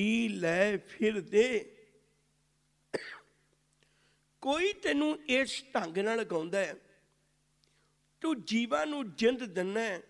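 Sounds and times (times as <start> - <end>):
man coughing: 2.9 - 3.4.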